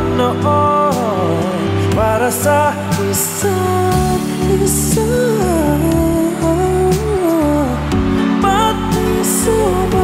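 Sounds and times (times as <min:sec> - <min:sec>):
low bass notes: 0:00.0 - 0:10.0
man singing into microphone: 0:00.0 - 0:10.0.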